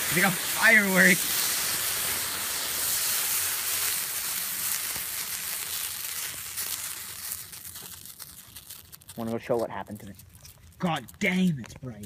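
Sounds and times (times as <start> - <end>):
crackles: 0.0 - 12.0
thermite burning with a hiss: 0.0 - 12.0.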